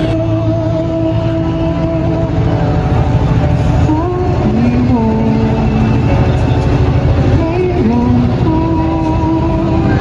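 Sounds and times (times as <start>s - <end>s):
person singing long sliding notes: 0.0s - 2.7s, 3.8s - 6.2s, 7.4s - 10.0s
heavy low rumble: 0.0s - 10.0s.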